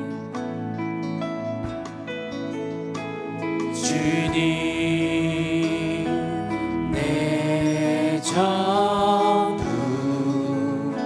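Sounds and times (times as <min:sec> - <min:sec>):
acoustic guitar: 0:00.0 - 0:11.0
voices singing held notes: 0:03.7 - 0:11.0.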